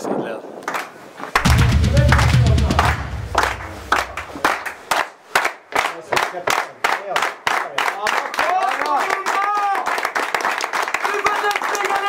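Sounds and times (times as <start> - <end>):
group clapping in rhythm: 0.7 - 12.0
deep low boom in music: 1.4 - 4.4.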